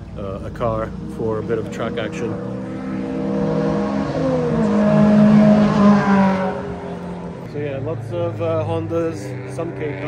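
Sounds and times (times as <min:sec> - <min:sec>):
race car engine passing by: 0:00.2 - 0:10.0.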